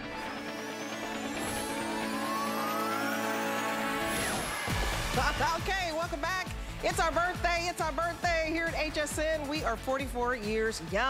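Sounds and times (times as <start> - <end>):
tone gliding upward: 0.0 - 5.5
held electronic chord: 0.0 - 5.8.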